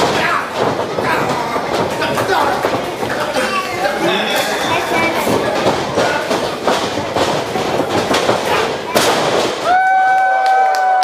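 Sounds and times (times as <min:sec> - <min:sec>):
bodies hitting wrestling ring canvas: 0:00.0 - 0:03.4, 0:05.1 - 0:09.9
loud body impact: 0:00.0 - 0:03.4, 0:04.9 - 0:10.0.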